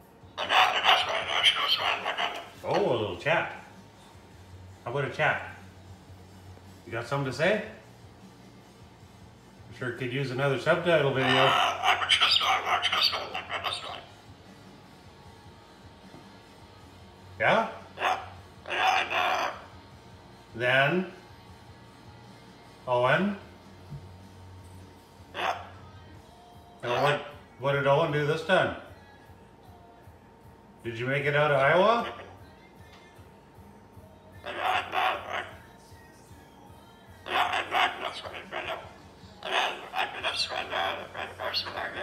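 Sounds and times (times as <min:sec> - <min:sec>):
cockatoo mimicking talk: 0:00.4 - 0:03.7, 0:11.0 - 0:14.2, 0:17.4 - 0:19.7, 0:25.3 - 0:25.8, 0:26.8 - 0:27.4, 0:31.3 - 0:32.4, 0:34.4 - 0:35.7, 0:37.2 - 0:42.0.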